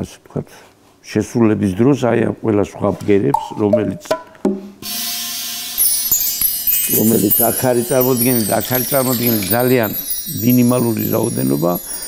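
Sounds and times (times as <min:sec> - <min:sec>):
bar chimes tinkling: 0:04.9 - 0:12.0
chime rods brushing: 0:04.9 - 0:12.0.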